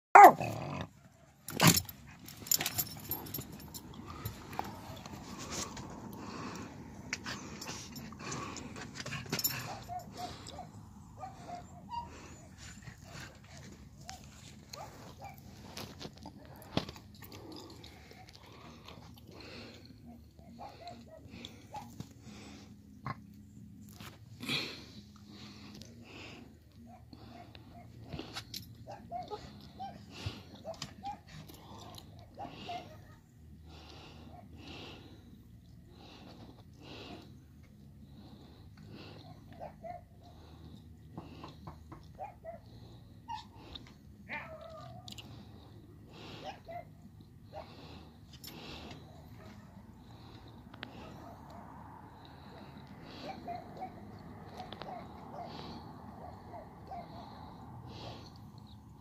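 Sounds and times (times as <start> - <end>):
dog yelping: 0.1 - 0.6, 9.7 - 13.1, 28.9 - 31.3, 53.2 - 57.2
husky barking: 0.1 - 1.8, 9.5 - 16.6, 20.0 - 22.0, 28.8 - 33.0, 39.2 - 40.4, 42.1 - 43.6, 53.0 - 57.6
quiet scattered small noises: 0.2 - 59.0.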